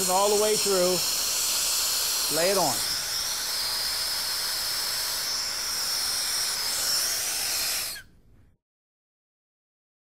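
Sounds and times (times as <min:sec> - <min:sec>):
gas torch flame hissing: 0:00.0 - 0:08.1.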